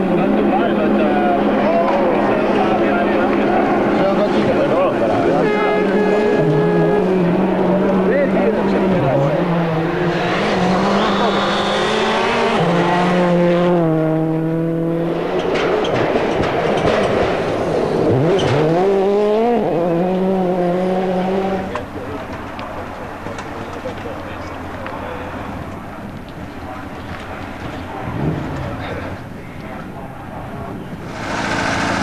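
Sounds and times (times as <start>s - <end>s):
rally car engines at full throttle: 0.0s - 32.0s.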